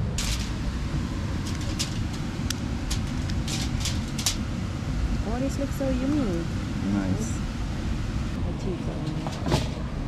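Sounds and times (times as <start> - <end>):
steady low rumble: 0.0 - 10.0
aluminium foil crinkling: 2.9 - 4.4.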